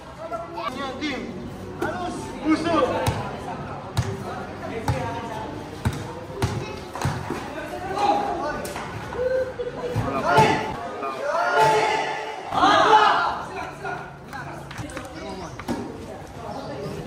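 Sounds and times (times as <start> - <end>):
players shouting and talking: 0.0 - 16.0
basketball bouncing on concrete: 4.8 - 5.2, 5.8 - 7.4.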